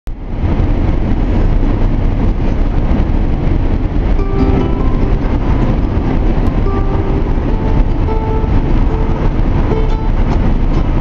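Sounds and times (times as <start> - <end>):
road and engine rumble in car: 0.1 - 11.0.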